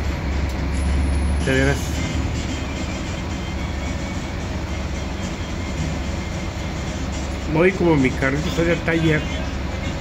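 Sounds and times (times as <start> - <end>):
bus engine rumble: 0.0 - 10.0
music playing: 0.3 - 10.0.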